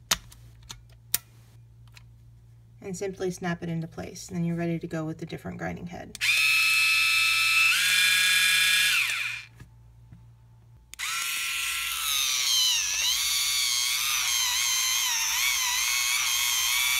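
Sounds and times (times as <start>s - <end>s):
small motor whirring with high whine: 6.2s - 9.5s, 10.9s - 16.9s.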